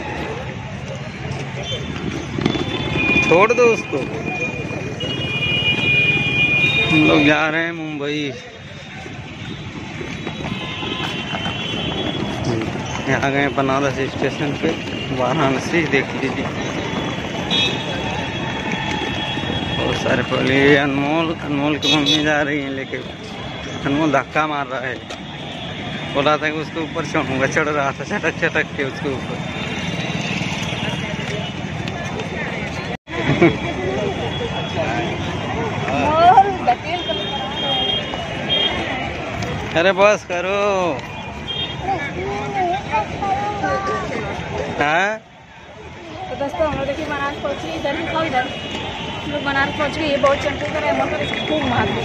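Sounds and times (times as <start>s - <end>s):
indistinct crowd voices: 0.0s - 52.0s
outdoor background noise: 0.0s - 52.0s
traffic: 0.0s - 52.0s.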